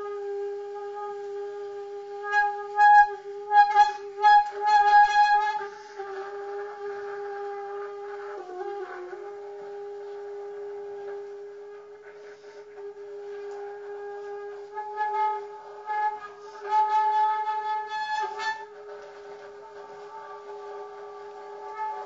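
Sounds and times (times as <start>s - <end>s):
alto saxophone: 0.0s - 22.0s.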